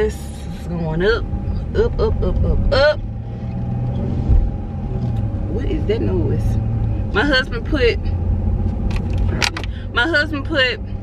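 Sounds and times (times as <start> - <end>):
engine and road rumble: 0.0 - 11.0
low thump: 4.2 - 4.6.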